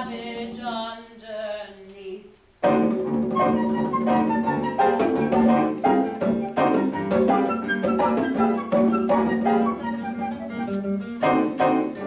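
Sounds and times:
classical guitar: 2.6 - 12.0
grand piano: 2.6 - 12.0.

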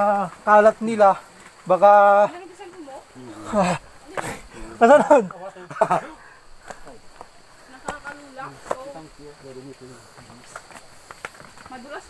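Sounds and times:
people laughing: 3.4 - 6.4.

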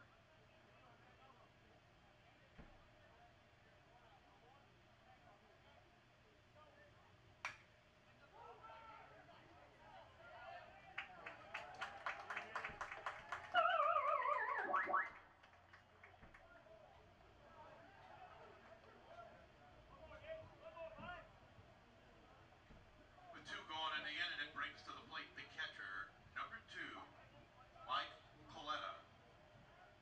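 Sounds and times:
rhythmic clapping: 11.0 - 16.5
wavering tone falling in pitch: 13.6 - 15.1.

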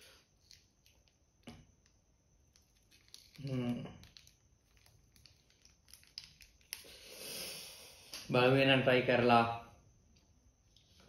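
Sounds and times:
plastic sachet crinkling: 2.7 - 6.9.

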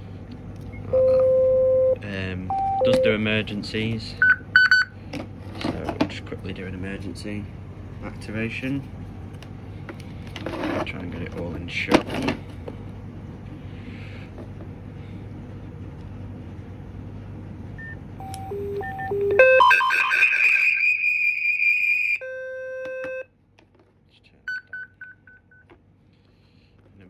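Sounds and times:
steady hum and hiss: 0.0 - 19.6
low steady tone: 0.7 - 3.2
short beeps: 0.8 - 3.2
high warbling alarm tone: 18.3 - 23.2.

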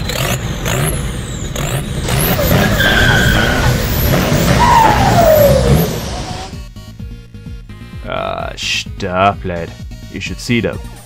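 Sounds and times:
tyres screeching: 0.0 - 6.6
car engine rumble: 0.0 - 7.8.

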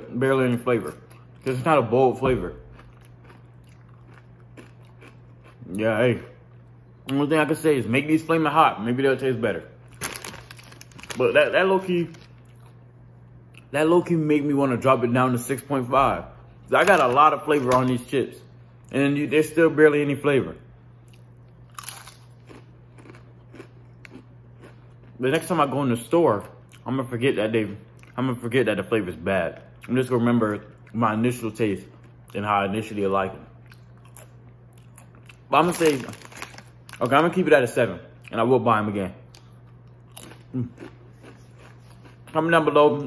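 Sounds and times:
steady low hum: 0.0 - 43.0
chips being chewed: 2.6 - 5.8, 9.8 - 11.4, 21.1 - 25.5, 33.6 - 37.3, 39.3 - 42.5.

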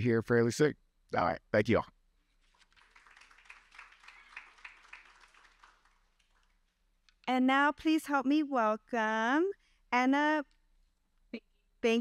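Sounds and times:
faint audience applause: 2.4 - 6.8.

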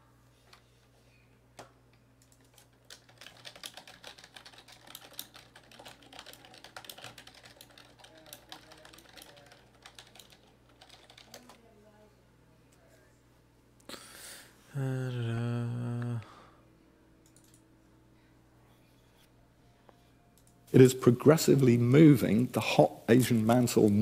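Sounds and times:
computer keyboard typing: 2.2 - 11.6, 17.2 - 17.6.

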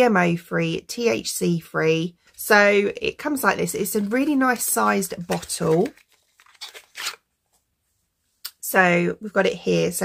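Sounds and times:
box being handled rustling: 3.8 - 7.6.

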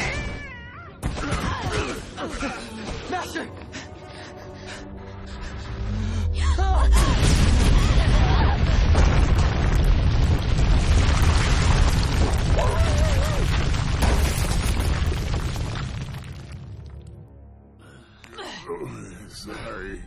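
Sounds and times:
huge crash and rumble: 6.9 - 17.1.

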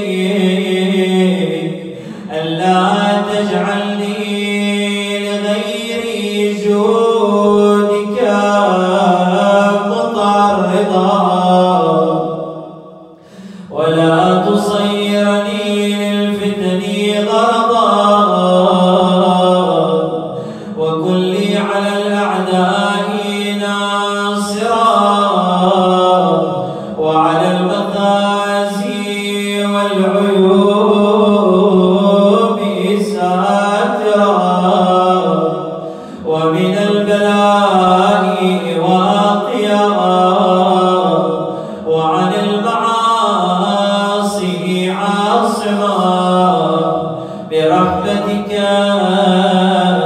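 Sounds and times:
man chanting melodic recitation: 0.0 - 12.7, 13.3 - 50.0.

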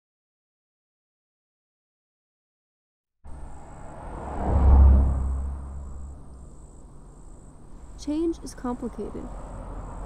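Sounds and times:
low traffic hum: 3.2 - 10.0
vehicle passing: 3.3 - 10.0.

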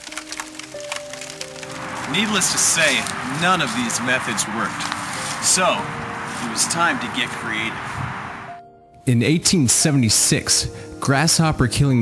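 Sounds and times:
fire crackling and popping: 0.0 - 5.4
soft background music: 0.0 - 12.0.

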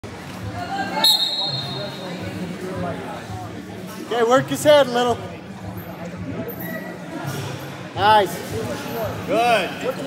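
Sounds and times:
voices in a gym: 0.0 - 10.0
referee's whistle: 1.0 - 2.0.

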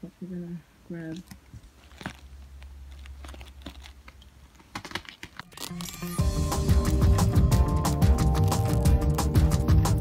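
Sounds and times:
bubble wrap crinkling: 1.1 - 10.0.

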